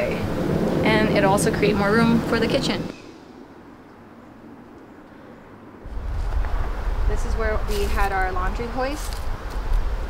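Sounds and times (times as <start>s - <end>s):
wind buffeting microphone: 0.0s - 4.8s, 5.5s - 10.0s
faint outdoor ambience: 0.0s - 10.0s.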